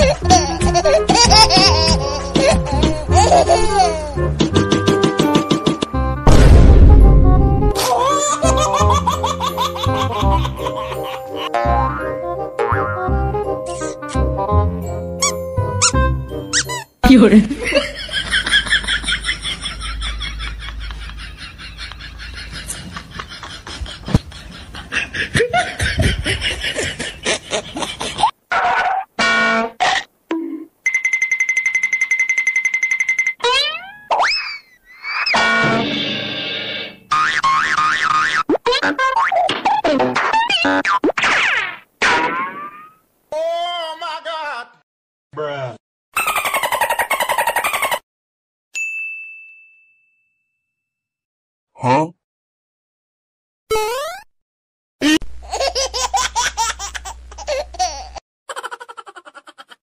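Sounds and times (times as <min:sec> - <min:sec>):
high-pitched laughter: 0:46.2 - 0:48.0, 0:55.0 - 0:59.8.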